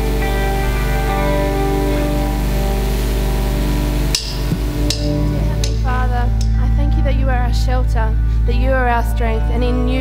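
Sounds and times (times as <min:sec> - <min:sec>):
electric guitar: 0:00.0 - 0:10.0
sustained chords: 0:00.0 - 0:10.0.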